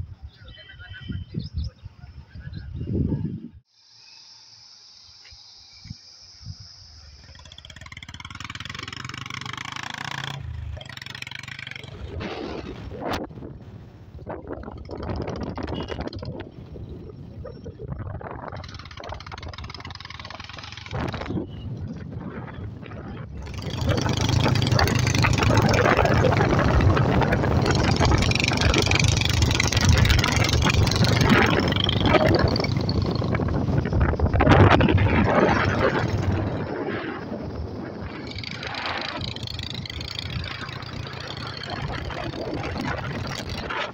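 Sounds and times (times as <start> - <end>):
wind on microphone: 0.0 - 3.6, 11.8 - 43.9
vehicle driving along road: 6.1 - 17.7, 18.5 - 43.9.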